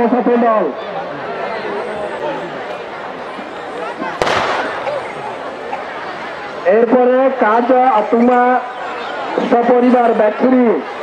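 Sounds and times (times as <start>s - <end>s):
large crowd voices: 0.0s - 11.0s
firework bang: 4.2s - 5.1s.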